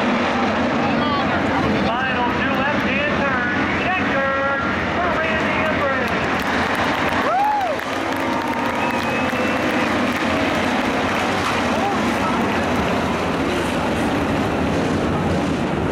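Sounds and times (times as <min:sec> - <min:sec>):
crowd voices: 0:00.0 - 0:15.6
race car engines: 0:00.0 - 0:15.9.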